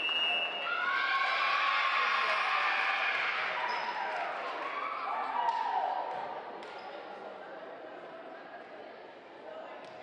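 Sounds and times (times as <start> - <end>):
voices echoing in gymnasium: 0.0 - 10.0.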